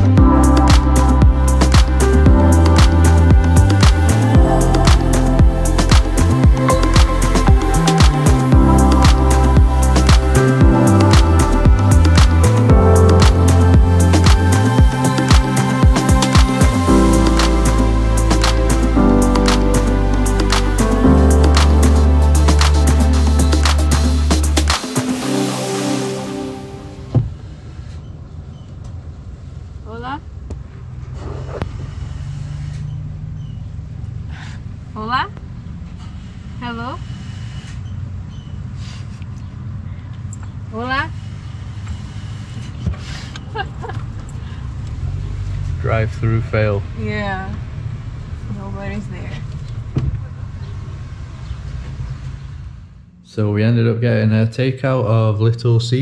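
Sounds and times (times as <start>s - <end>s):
car engine idling: 0.0s - 25.6s.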